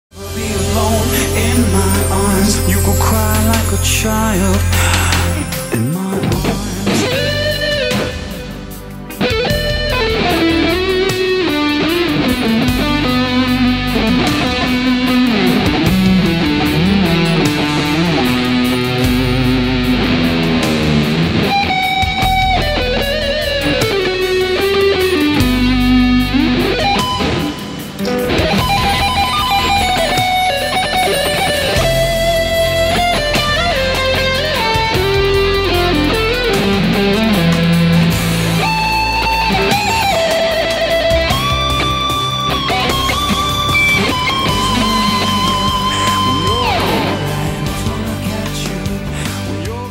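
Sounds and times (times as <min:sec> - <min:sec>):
overdriven electric guitar solo: 0:00.1 - 0:49.9
rock backing track: 0:00.1 - 0:49.9.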